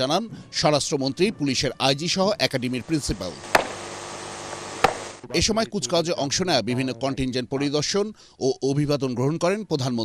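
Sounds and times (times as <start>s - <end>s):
background hiss: 2.5s - 5.6s
sharp knock: 3.5s - 3.9s, 4.8s - 5.2s.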